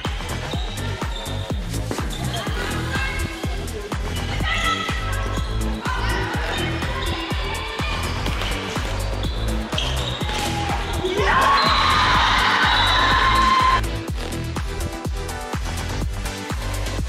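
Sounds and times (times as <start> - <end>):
electronic dance music: 0.0 - 17.0.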